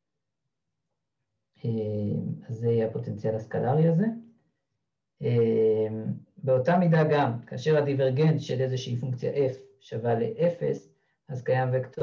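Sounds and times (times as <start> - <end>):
man speaking: 1.6 - 4.2, 5.2 - 12.0.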